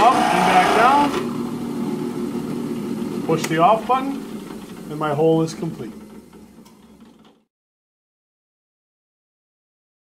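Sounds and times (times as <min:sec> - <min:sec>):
drill press motor winding down: 0:00.0 - 0:07.5.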